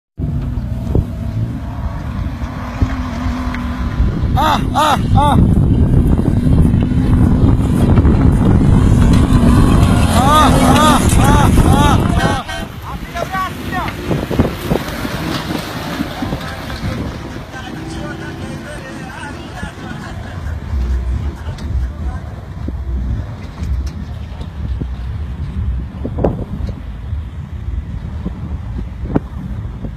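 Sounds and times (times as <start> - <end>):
engine rumbling: 0.2 - 29.9
vehicle driving off-road: 0.2 - 29.9
wind buffeting microphone: 0.2 - 29.9.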